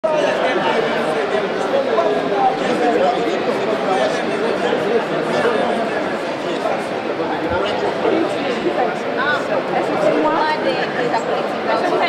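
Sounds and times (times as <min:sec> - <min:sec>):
crowd chatter indoors: 0:00.0 - 0:12.0.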